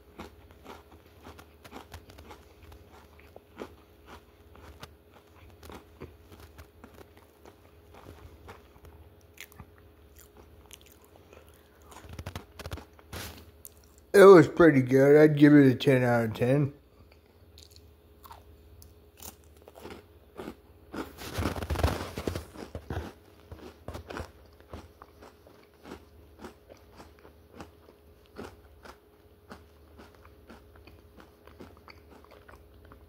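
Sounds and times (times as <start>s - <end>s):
crunchy cone chewing: 0.0s - 14.1s, 17.0s - 33.0s.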